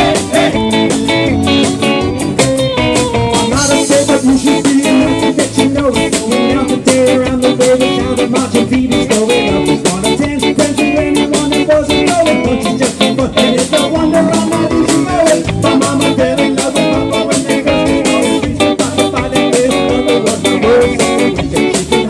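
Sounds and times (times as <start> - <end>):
man singing: 0.0 - 1.7, 3.4 - 22.0
drum beat: 0.0 - 22.0.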